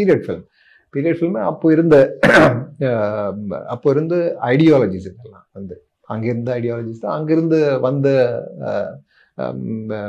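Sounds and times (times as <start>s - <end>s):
man speaking: 0.0s - 10.0s
man clearing his throat: 2.2s - 2.8s.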